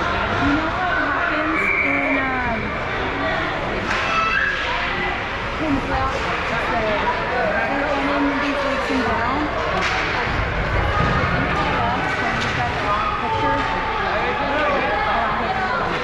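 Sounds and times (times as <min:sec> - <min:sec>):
crowd voices chattering: 0:00.0 - 0:16.0.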